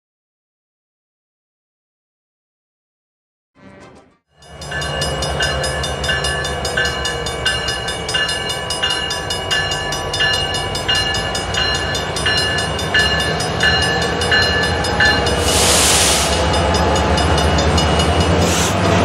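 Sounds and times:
crossing bell ringing: 4.3 - 18.5
diesel locomotive engine rumble: 4.4 - 19.0.

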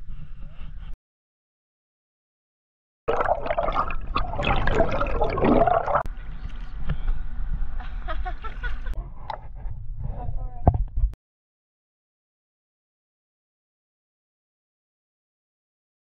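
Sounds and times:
water splashing and gurgling: 3.1 - 6.1.

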